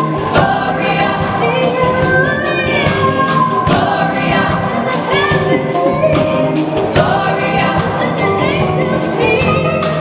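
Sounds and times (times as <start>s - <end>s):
gospel choir singing: 0.0s - 10.0s
sharp percussion hits: 0.3s - 9.2s.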